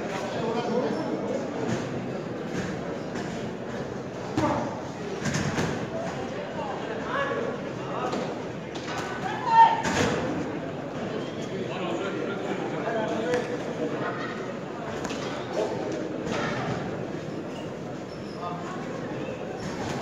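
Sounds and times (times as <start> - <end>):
spectators' voices and shouts: 6.0 - 17.1.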